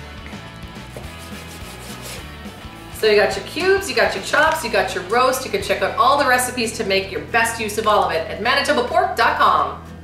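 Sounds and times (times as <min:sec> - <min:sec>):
soft background music: 0:00.0 - 0:10.0
knife sawing on plastic cutting board: 0:00.8 - 0:02.8.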